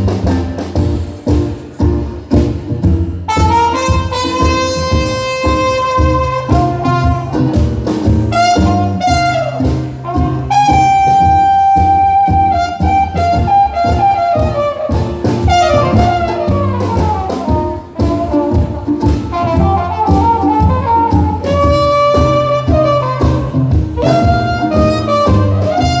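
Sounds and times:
low cello bass notes: 0.0s - 26.0s
trumpet melody: 3.2s - 26.0s.

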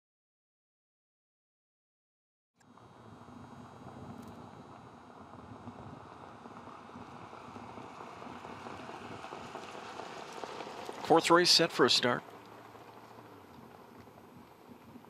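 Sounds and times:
racetrack noise: 2.6s - 15.0s.

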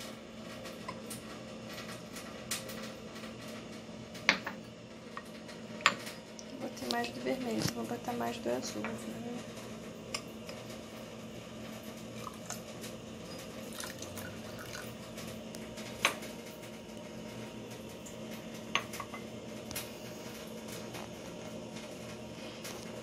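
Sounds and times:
tea pouring into a cup: 12.1s - 15.2s.

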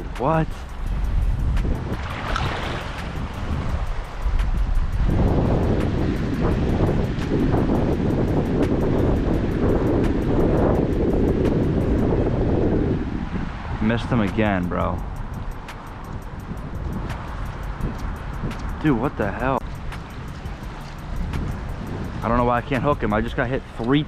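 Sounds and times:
small waves lapping: 0.0s - 4.6s, 19.6s - 24.0s
wind buffeting microphone: 0.0s - 24.0s.

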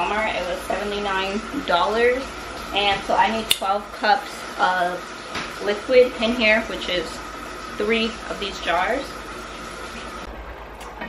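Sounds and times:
low appliance hum: 0.0s - 11.0s.

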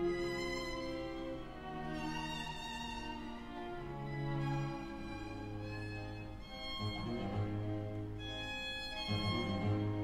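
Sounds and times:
bowed strings chamber music: 0.0s - 10.0s
viola: 0.0s - 10.0s.

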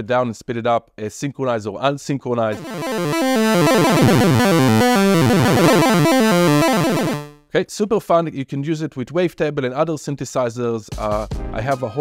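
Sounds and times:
chiptune synth arpeggio: 2.5s - 7.4s.

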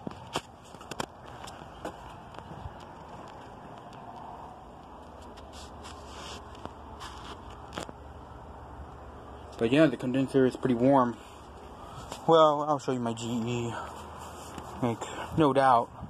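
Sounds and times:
air conditioner humming: 1.2s - 16.0s.

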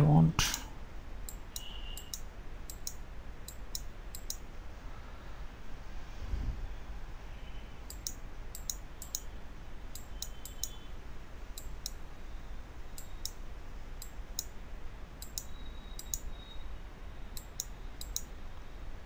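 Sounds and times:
faint low hum: 0.0s - 19.0s
computer mouse button clicking: 1.3s - 4.4s, 7.9s - 9.3s.

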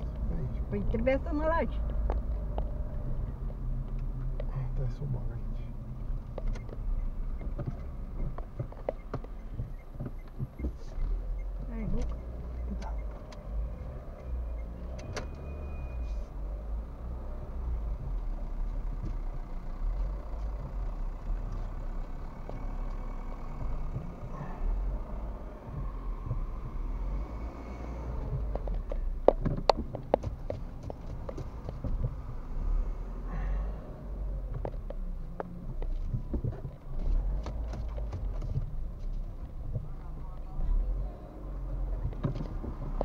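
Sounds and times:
car engine and tyres rumbling: 0.0s - 43.0s.

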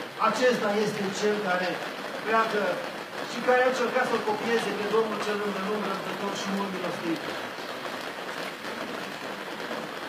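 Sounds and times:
hiss and rustle of crowded room: 0.0s - 10.0s.

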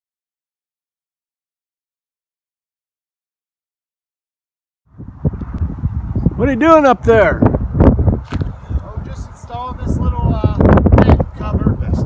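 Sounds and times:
wind buffeting microphone: 4.9s - 12.0s.

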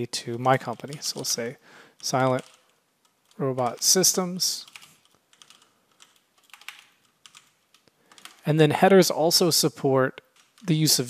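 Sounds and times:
faint keyboard typing: 0.0s - 8.6s, 10.2s - 11.0s.

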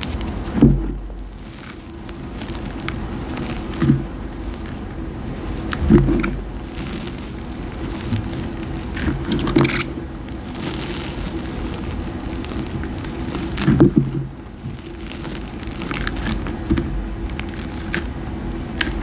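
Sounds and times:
hands crunching powdered chalk: 0.0s - 19.0s.

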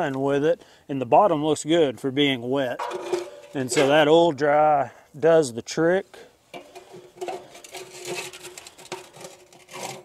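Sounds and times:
metal scraper scraping steel floor: 2.8s - 3.9s, 6.8s - 10.0s.

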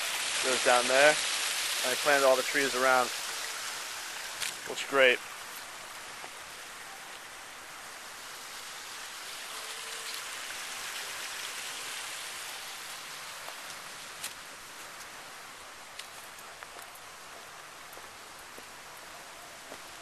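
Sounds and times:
waterfall rushing: 0.0s - 16.3s.

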